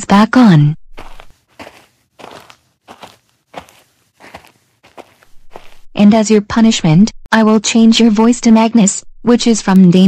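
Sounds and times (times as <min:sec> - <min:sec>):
cartoon footsteps: 0:00.6 - 0:07.0.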